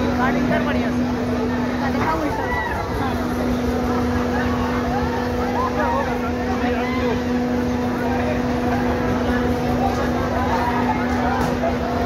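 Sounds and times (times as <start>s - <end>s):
babble of many voices: 0.0s - 12.0s
ride machinery hum: 0.0s - 12.0s.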